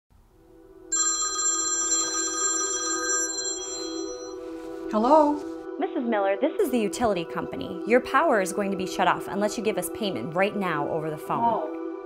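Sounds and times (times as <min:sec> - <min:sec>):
soft background music: 0:00.4 - 0:12.0
trilling phone ringtone: 0:00.9 - 0:04.7.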